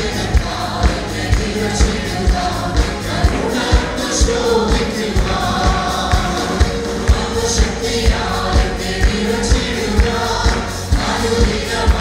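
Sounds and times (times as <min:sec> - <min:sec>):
band accompaniment: 0:00.0 - 0:12.0
group singing worship song: 0:00.0 - 0:12.0
steady low beat: 0:00.0 - 0:12.0.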